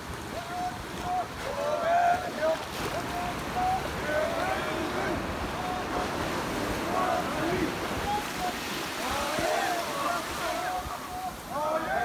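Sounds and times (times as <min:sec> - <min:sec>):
small surf washing onto sand: 0:00.0 - 0:12.0
men shouting: 0:00.3 - 0:12.0.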